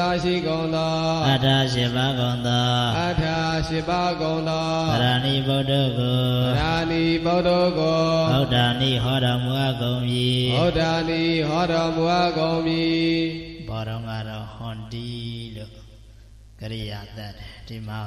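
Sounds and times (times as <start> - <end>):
man chanting into a microphone: 0.0 - 18.0.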